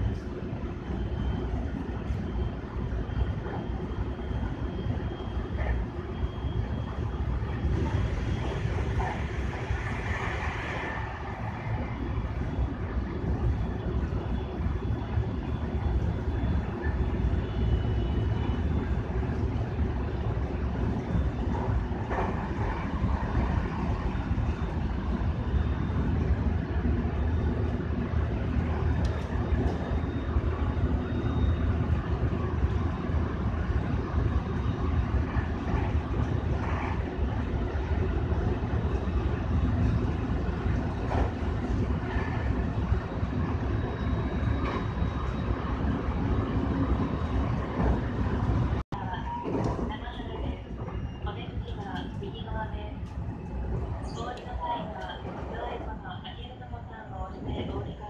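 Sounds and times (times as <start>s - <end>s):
train rumbling on rails: 0.0s - 58.0s.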